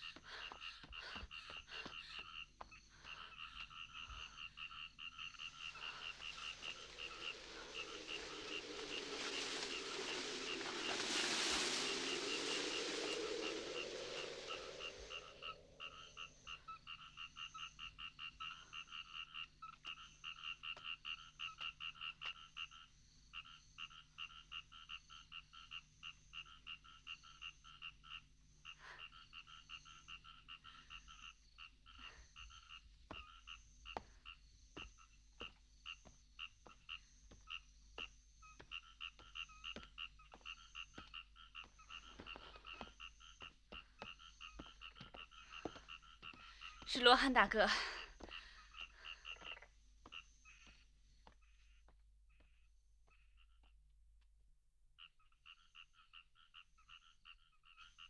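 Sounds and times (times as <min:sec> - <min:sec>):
small animals calling: 0:00.0 - 0:16.3
wind rustling through plants: 0:05.0 - 0:16.2.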